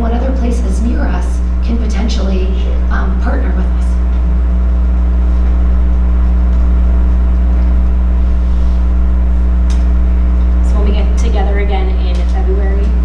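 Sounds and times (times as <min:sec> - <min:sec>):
low electrical hum: 0:00.0 - 0:13.0.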